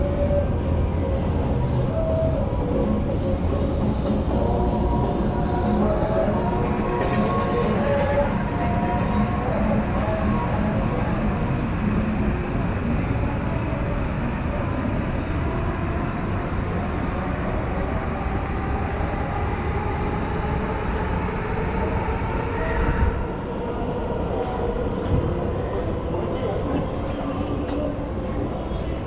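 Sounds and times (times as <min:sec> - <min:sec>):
train rumbling on elevated tracks: 0:00.0 - 0:29.0.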